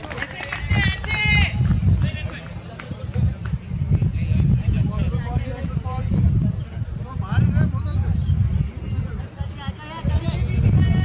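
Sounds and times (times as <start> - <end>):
players shouting calls: 0.0 - 3.1
wind buffeting microphone: 0.0 - 11.0.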